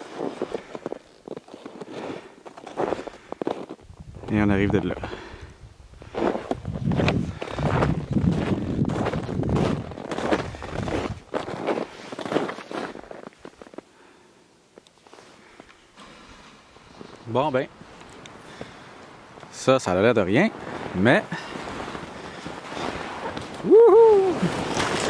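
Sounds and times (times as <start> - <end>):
footsteps in snow: 0.0 - 5.2, 6.0 - 13.8, 15.0 - 25.0.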